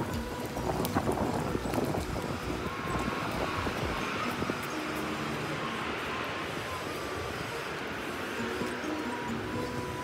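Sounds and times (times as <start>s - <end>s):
stroller wheels rattling on paving: 0.0s - 10.0s.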